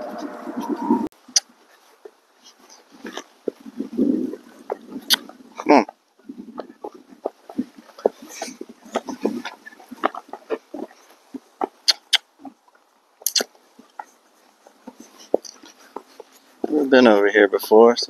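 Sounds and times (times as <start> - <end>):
hooves on dirt: 0.0 - 18.0
saddle and tack creaking: 1.3 - 17.9.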